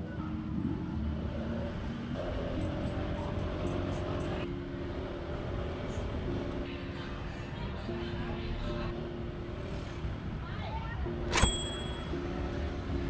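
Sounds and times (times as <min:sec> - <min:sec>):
wind and road noise: 0:00.0 - 0:13.0.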